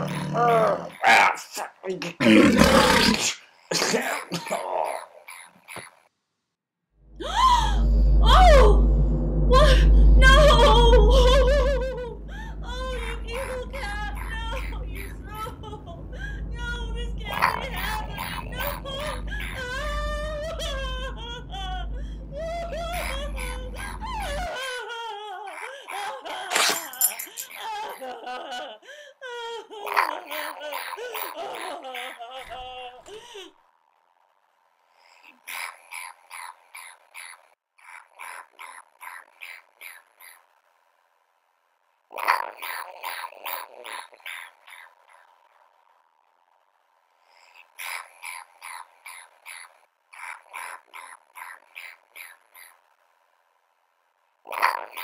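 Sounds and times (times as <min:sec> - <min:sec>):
steady low hum: 0:07.0 - 0:25.3
wailing cries: 0:07.2 - 0:33.4
person cackling with laughter: 0:22.7 - 0:33.5.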